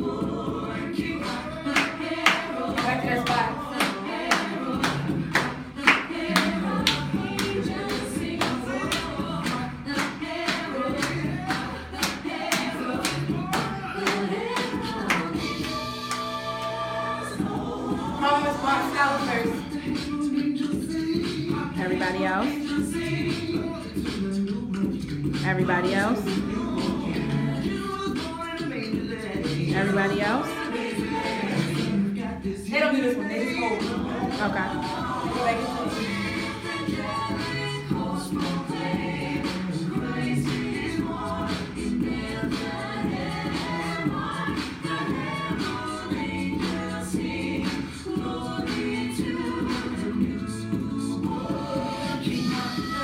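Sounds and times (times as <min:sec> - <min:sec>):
gospel choir singing: 0:00.0 - 0:53.0.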